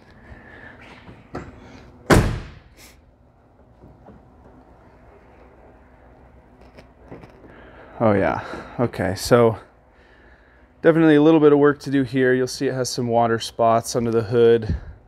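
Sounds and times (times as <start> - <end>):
car door shutting: 2.1 - 2.6.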